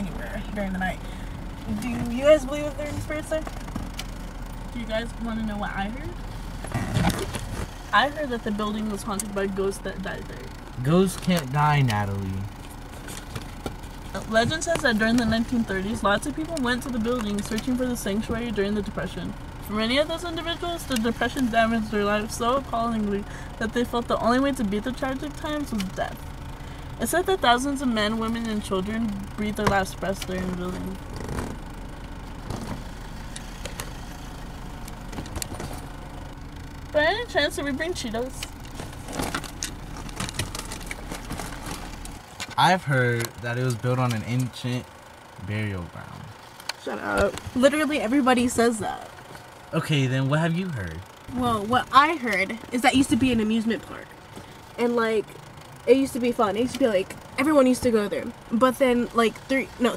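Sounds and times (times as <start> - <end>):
car interior rumble: 0.0 - 59.9
rustling handling noise: 38.6 - 42.6.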